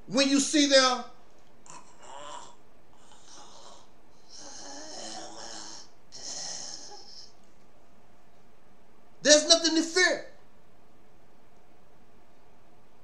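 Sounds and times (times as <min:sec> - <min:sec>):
man's rasping snore-like breathing: 0:01.7 - 0:07.3.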